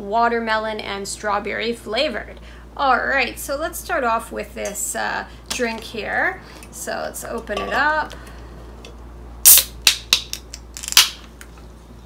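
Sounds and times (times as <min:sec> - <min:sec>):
can opening crack and hiss: 0:09.4 - 0:11.3.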